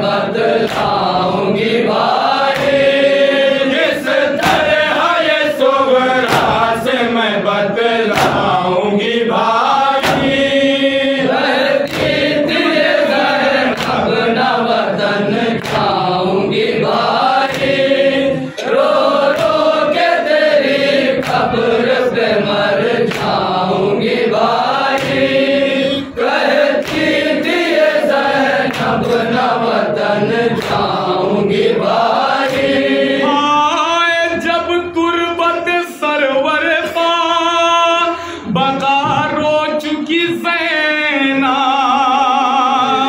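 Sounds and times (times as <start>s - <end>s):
men chanting a lament: 0.0s - 43.0s
chest-beating slaps: 0.6s - 1.2s, 1.9s - 3.1s, 4.3s - 5.1s, 6.2s - 6.9s, 8.0s - 8.7s, 9.9s - 10.6s, 11.4s - 16.2s, 16.8s - 29.4s, 30.5s - 31.2s, 32.3s - 32.9s.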